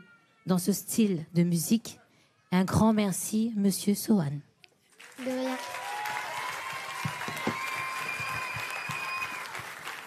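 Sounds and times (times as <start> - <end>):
audience applauding: 4.9 - 10.0.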